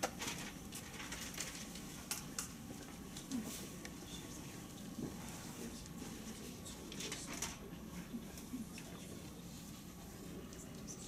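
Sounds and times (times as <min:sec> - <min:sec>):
faint rustling and scratching: 0:02.8 - 0:11.0.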